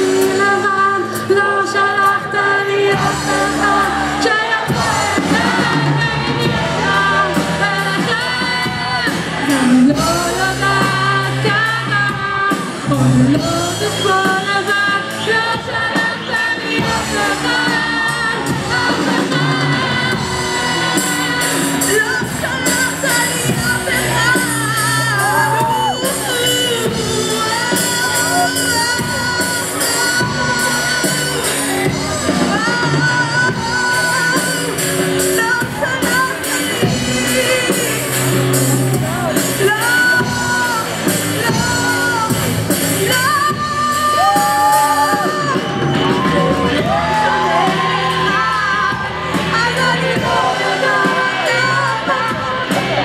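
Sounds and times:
bass guitar: 0:00.0 - 0:53.0
drums: 0:00.0 - 0:53.0
electric guitars: 0:00.0 - 0:53.0
live rock band: 0:00.0 - 0:53.0
woman singing lead vocal: 0:00.0 - 0:53.0
crowd shouting along: 0:02.2 - 0:10.9, 0:16.6 - 0:33.3, 0:43.4 - 0:53.0.

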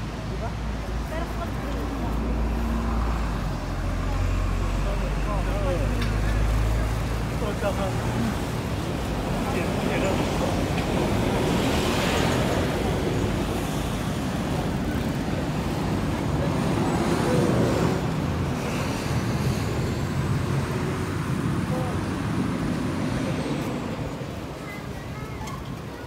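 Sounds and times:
passing cars and vans: 0:00.0 - 0:26.0.

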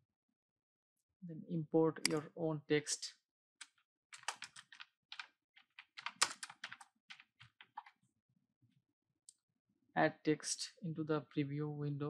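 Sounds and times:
typing on keyboard: 0:04.2 - 0:08.0.

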